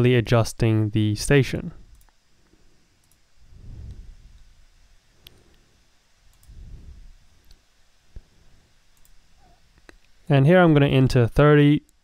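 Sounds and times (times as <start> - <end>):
computer mouse clicks: 3.0 - 3.2, 6.3 - 6.6, 9.0 - 9.2.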